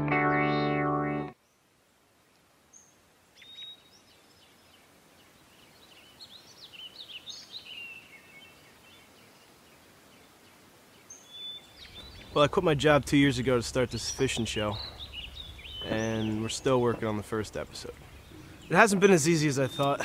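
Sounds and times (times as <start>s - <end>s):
birds chirping: 2.7s - 20.0s.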